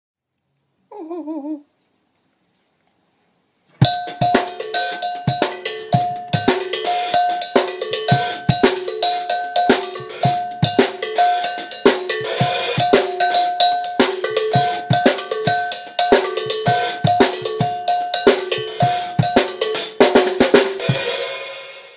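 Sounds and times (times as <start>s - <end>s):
cowbell struck with drumstick: 3.8s - 21.8s
drum hits: 3.8s - 21.9s.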